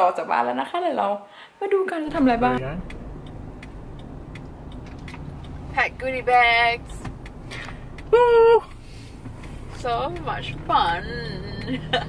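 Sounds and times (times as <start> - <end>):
woman speaking: 0.0 - 2.7, 5.8 - 6.9, 9.8 - 11.9
car engine and road rumble: 2.1 - 12.0.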